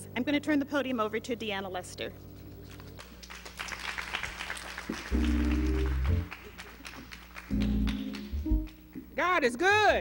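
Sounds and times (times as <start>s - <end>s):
congregation clapping: 2.6s - 9.0s
held low chords: 5.1s - 6.3s, 7.5s - 8.9s.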